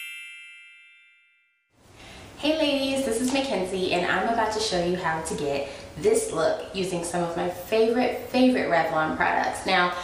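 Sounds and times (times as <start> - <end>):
bright high chime ringing: 0.0 - 1.7.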